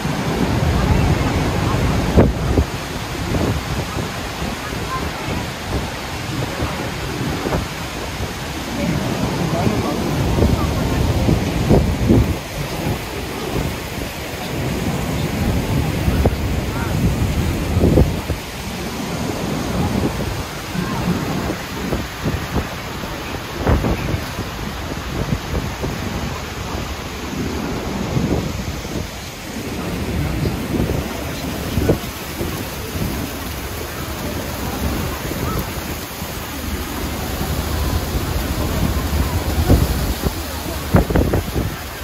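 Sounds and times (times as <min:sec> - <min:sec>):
river water rushing: 0:00.0 - 0:42.0
wind noise on microphone: 0:00.0 - 0:42.0.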